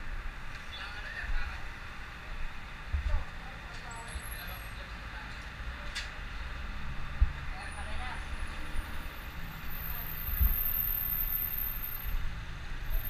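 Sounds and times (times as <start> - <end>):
street traffic rumble: 0.0 - 13.0
faint high whine: 8.3 - 13.0.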